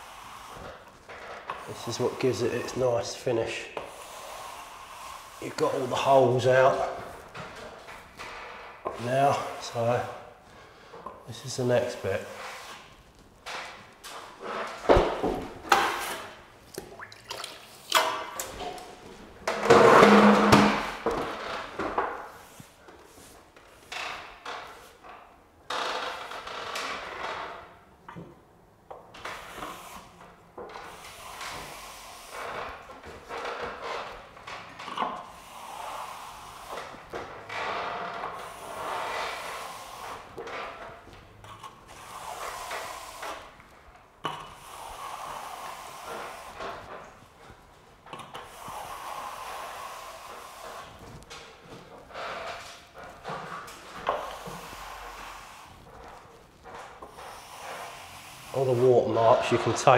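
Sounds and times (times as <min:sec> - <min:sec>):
brush strokes on wet plaster: 0:01.6 - 0:07.3, 0:08.9 - 0:13.2, 0:35.2 - 0:37.2, 0:38.2 - 0:41.0, 0:41.6 - 0:43.6, 0:44.4 - 0:59.9
knocks and splashes: 0:16.7 - 0:18.3.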